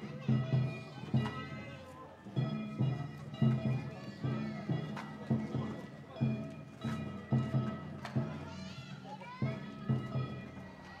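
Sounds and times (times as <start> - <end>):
children's voices: 0.0 - 2.0, 8.0 - 11.0
drum beats in pairs: 0.0 - 8.7.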